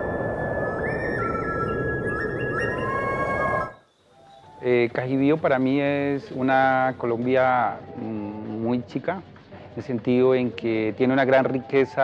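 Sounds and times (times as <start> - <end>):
steady rushing noise: 0.0 - 3.8
synthesized tones stepping in pitch: 0.0 - 3.8.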